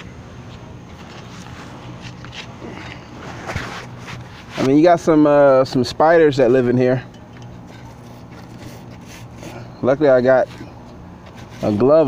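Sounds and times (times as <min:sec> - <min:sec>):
gloved hand scraping gutter debris: 0:07.2 - 0:12.0.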